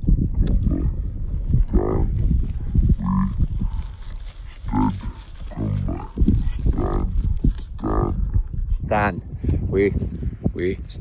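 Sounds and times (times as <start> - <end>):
wind rumble on microphone: 0.0 - 11.0.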